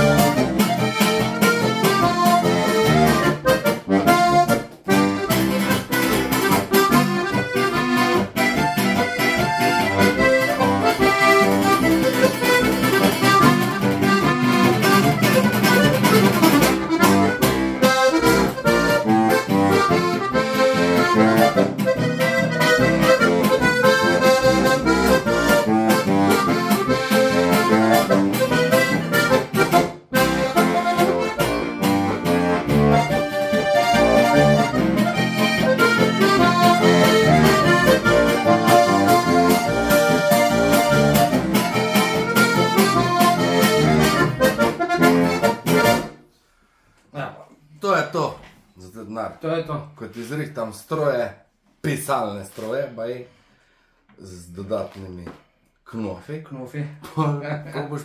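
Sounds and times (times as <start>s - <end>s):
button accordion tune: 0.0s - 46.3s.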